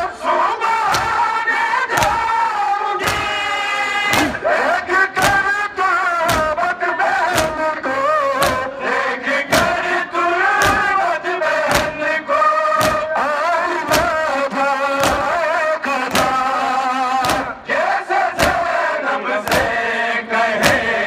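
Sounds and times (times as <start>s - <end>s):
men chanting a lament: 0.0s - 21.0s
hands striking chests: 0.9s - 1.2s, 1.9s - 2.4s, 3.0s - 3.4s, 4.1s - 4.5s, 5.2s - 5.6s, 6.2s - 6.6s, 7.3s - 7.7s, 8.4s - 8.8s, 9.5s - 9.9s, 10.6s - 11.0s, 11.6s - 13.2s, 13.8s - 14.4s, 15.0s - 15.4s, 16.1s - 16.5s, 17.2s - 17.6s, 18.3s - 18.8s, 19.4s - 19.8s, 20.6s - 21.0s.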